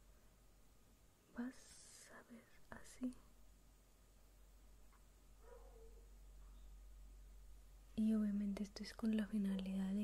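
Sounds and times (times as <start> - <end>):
woman whispering faintly: 1.3 - 3.3.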